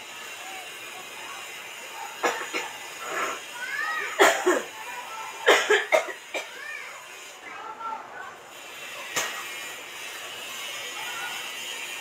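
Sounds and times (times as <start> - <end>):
person coughing: 2.2 - 3.3, 4.2 - 4.7, 5.4 - 6.5.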